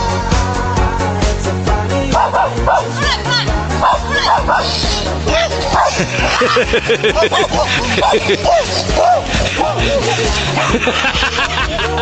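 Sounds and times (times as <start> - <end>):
background music: 0.0 - 12.0
dog yelping: 3.8 - 6.6, 7.2 - 10.1.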